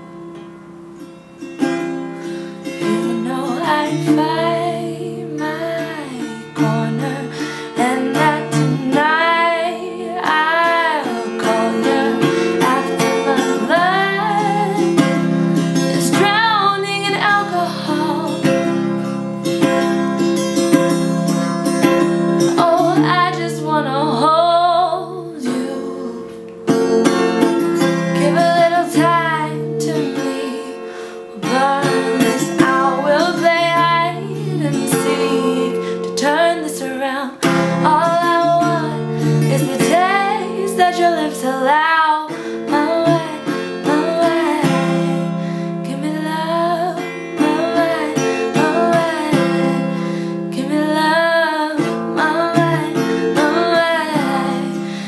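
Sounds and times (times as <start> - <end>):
acoustic guitar chords: 0.0 - 55.0
woman singing: 2.8 - 21.1, 22.4 - 55.0.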